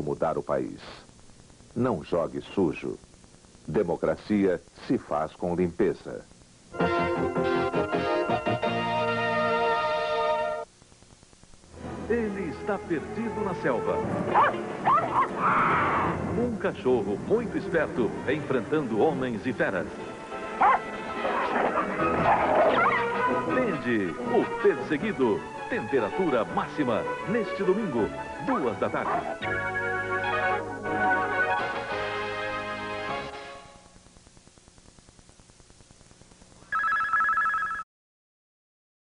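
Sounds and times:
background music: 0:06.7 - 0:10.7, 0:11.7 - 0:34.0
dog barking and whining: 0:14.3 - 0:16.0, 0:20.6 - 0:23.6, 0:29.0 - 0:29.4, 0:30.2 - 0:30.6
electronic two-tone warbling ring: 0:36.7 - 0:37.8.

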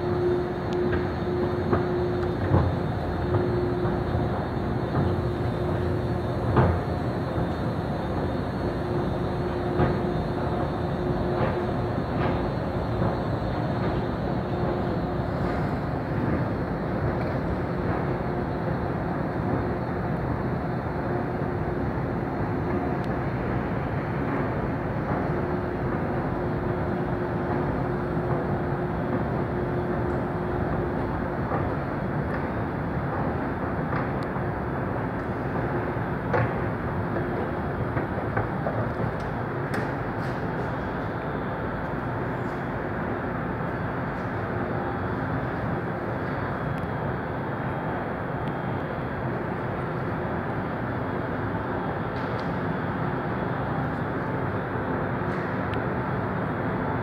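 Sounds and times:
machinery and ventilation rumble: 0:00.0 - 0:57.0.

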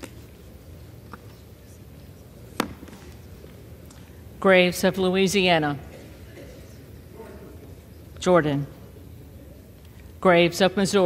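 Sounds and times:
chamber background noise: 0:00.0 - 0:11.0.

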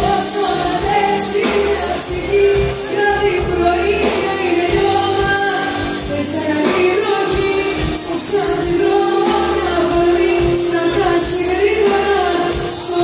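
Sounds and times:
drums and cymbals: 0:00.0 - 0:13.0
live pop band playing: 0:00.0 - 0:13.0
woman singing into microphone: 0:00.0 - 0:13.0.

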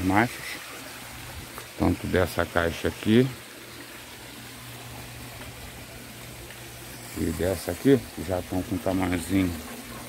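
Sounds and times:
running water: 0:00.0 - 0:10.0.

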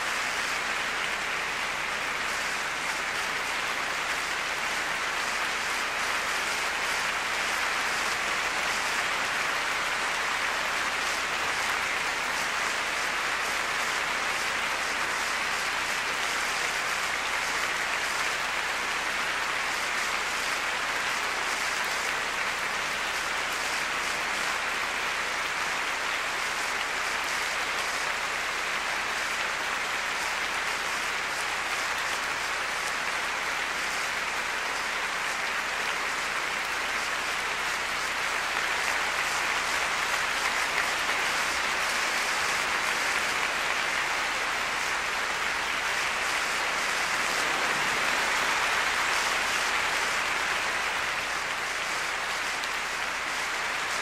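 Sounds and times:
large audience applauding: 0:00.0 - 0:54.0.

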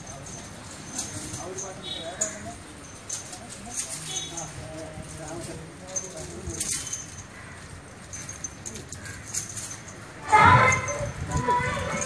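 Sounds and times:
low murmuring voices: 0:00.0 - 0:12.0
metal chains clinking: 0:00.0 - 0:12.0.

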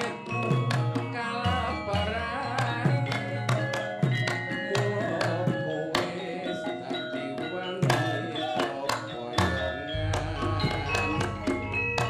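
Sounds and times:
ringing metallophone tones: 0:00.0 - 0:12.0.

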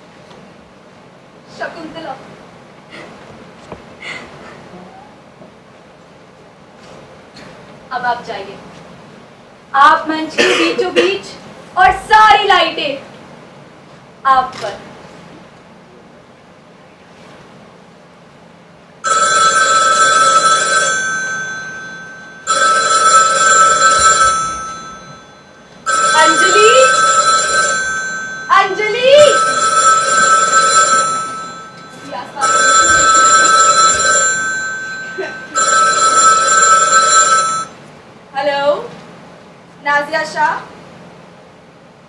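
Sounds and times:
telephone ringing: 0:19.0 - 0:37.8.

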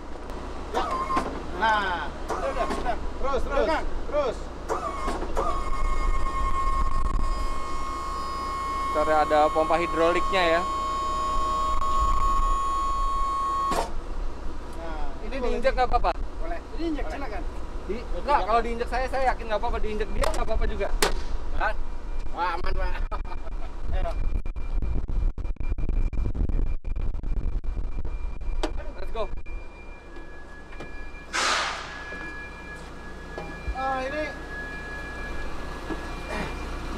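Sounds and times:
diesel engine idling: 0:00.0 - 0:20.9, 0:28.8 - 0:36.9
hydraulic pump whining: 0:00.7 - 0:03.5, 0:04.4 - 0:14.1, 0:29.4 - 0:36.9
ramp door clunk: 0:04.6 - 0:06.5
short hiss: 0:31.3 - 0:32.1.

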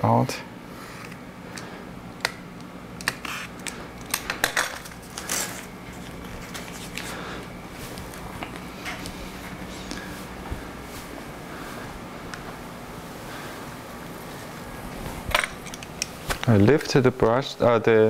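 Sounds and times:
low steady hum: 0:00.0 - 0:18.0
paper rustling: 0:04.8 - 0:07.2.

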